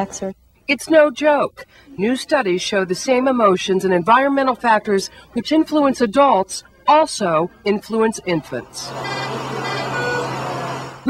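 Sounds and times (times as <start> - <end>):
machinery hum and hiss: 8.6 - 11.0.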